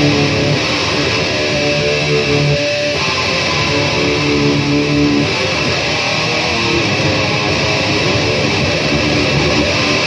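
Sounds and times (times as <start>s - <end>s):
electric guitar held notes: 0.0s - 10.0s.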